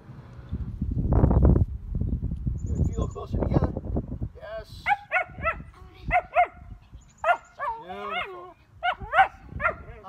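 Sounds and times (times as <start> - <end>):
dog barking: 4.9 - 6.6, 7.2 - 9.9.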